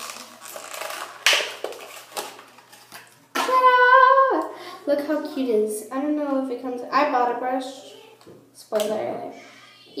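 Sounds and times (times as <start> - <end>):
plastic packaging crackling: 0.0 - 3.5.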